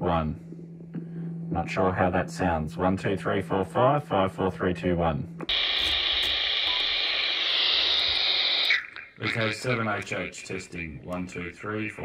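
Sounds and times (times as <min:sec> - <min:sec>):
radio static hiss: 0:05.5 - 0:12.0.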